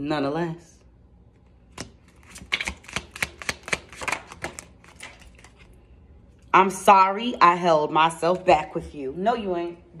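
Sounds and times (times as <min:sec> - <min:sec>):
cards being shuffled: 0:01.3 - 0:05.7.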